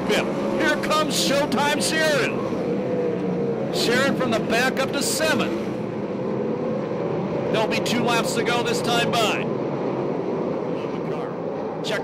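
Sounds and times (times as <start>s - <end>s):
racing car engines droning: 0.0s - 12.0s.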